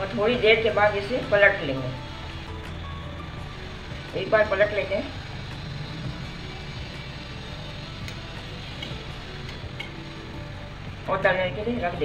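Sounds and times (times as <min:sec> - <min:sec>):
oil sizzling: 0:00.0 - 0:11.8
soft background music: 0:00.0 - 0:12.0.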